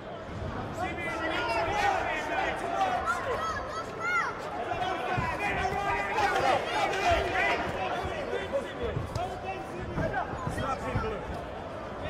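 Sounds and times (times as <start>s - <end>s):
spectators shouting: 0.7s - 8.8s.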